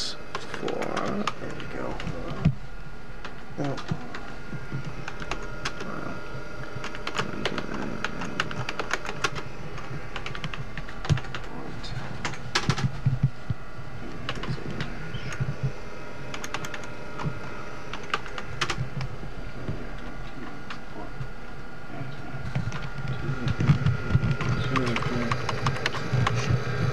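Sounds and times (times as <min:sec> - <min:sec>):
steady low hum: 0:00.0 - 0:26.9.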